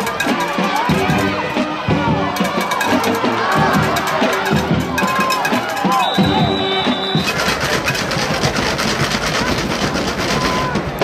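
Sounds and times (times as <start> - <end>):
music: 0.0 - 11.0
stadium crowd noise: 0.0 - 11.0
high whistle blast: 5.8 - 7.4.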